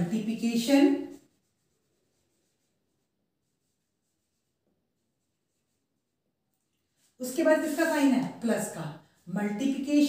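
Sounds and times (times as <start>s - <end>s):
marker writing on whiteboard: 0.0s - 6.3s.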